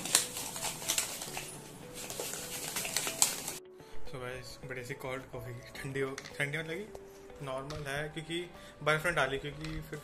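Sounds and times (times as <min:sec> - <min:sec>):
plastic bottles and utensils clicking: 0:00.0 - 0:03.6.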